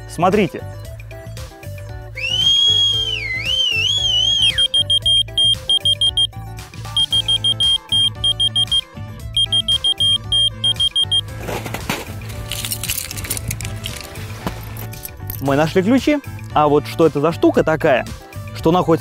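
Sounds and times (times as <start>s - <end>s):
background music: 0.0s - 19.0s
person whistling high note: 2.2s - 6.2s
rapid shrill electronic beeps: 4.3s - 6.3s, 7.0s - 8.8s, 9.4s - 11.2s.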